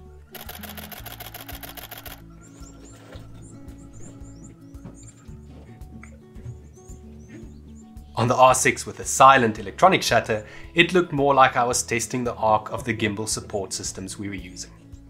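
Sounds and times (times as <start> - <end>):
background music with steady beat: 0.0 - 15.0
camera shutter burst: 0.3 - 2.2.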